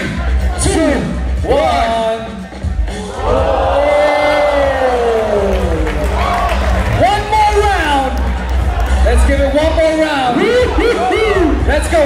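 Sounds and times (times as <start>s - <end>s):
crowd: 0.0s - 12.0s
music with steady bass: 0.0s - 12.0s.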